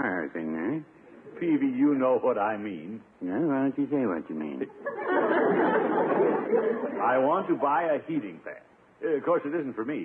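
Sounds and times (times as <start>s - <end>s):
audience laughing: 4.8s - 7.2s.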